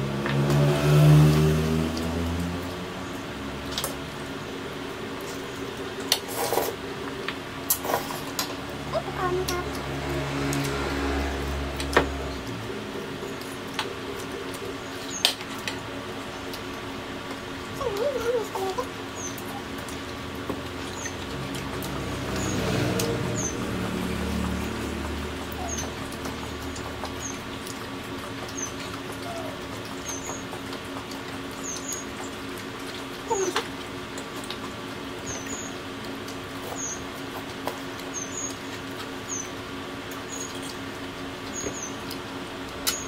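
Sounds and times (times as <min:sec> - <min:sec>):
people chewing food: 0:00.0 - 0:43.0.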